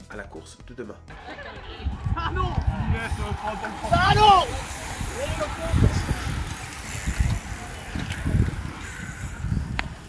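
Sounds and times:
cyclists riding past: 1.1 - 10.0
low rumbles: 1.1 - 10.0.

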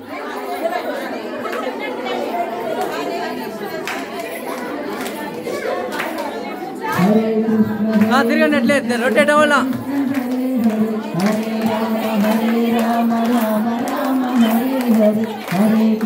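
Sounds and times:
overlapping voices chattering: 0.0 - 16.0
person chanting: 6.9 - 16.0.

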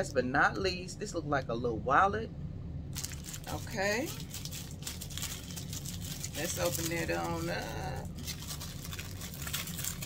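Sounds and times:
low steady hum: 0.0 - 10.0
plastic wrapping crinkling: 2.9 - 10.0.

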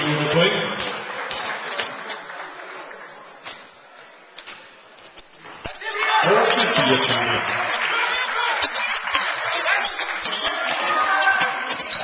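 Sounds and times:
crowd voices: 0.0 - 12.0
shoe squeak: 2.8 - 3.6, 4.4 - 6.0, 6.6 - 12.0.

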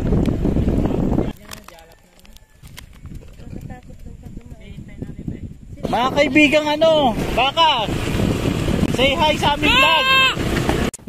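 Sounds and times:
light clicks and crunches: 1.3 - 4.5.

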